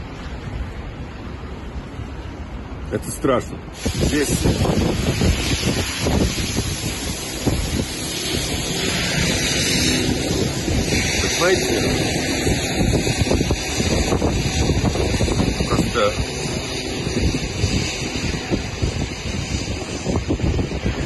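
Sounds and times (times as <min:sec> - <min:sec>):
wind rushing on microphone: 0:00.0 - 0:21.0.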